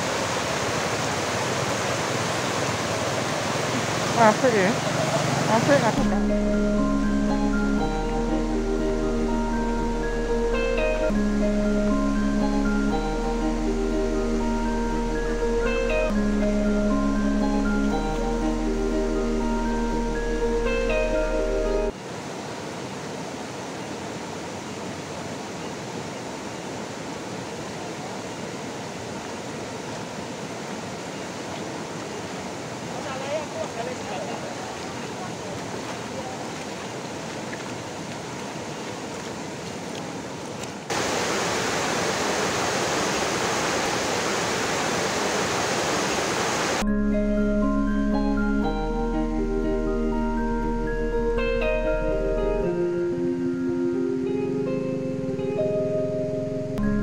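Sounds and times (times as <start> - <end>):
stream running over stones: 0.0 - 6.2, 21.9 - 46.8
marimba-like background music: 5.8 - 21.9, 46.8 - 57.0
feet splashing through water: 34.5 - 40.8.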